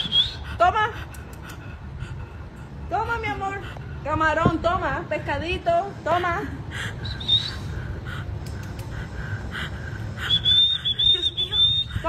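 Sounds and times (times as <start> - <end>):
low steady rumble: 0.0 - 12.0
thin high whistle: 10.3 - 12.0.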